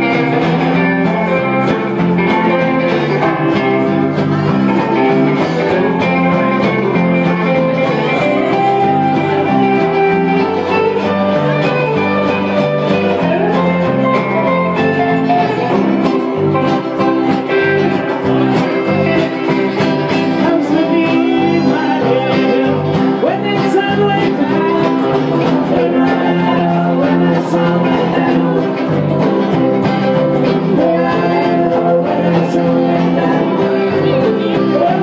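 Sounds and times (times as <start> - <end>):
bluegrass string band playing: 0.0 - 35.0.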